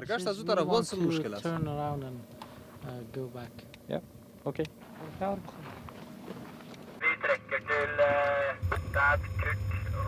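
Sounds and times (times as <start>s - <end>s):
low engine rumble: 7.0s - 10.0s
man speaking: 7.0s - 10.0s.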